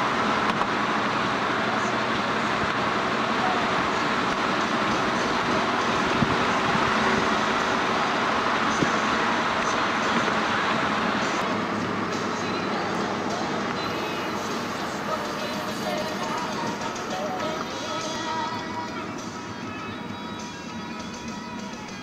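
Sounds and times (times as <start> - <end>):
car engine hum: 0.0 - 22.0
wind: 0.0 - 22.0.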